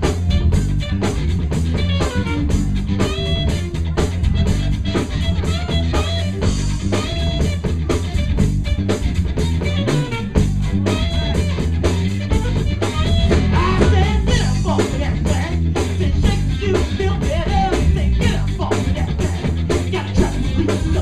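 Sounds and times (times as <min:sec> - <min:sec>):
live funk band playing: 0:00.0 - 0:21.0
person singing: 0:13.0 - 0:21.0.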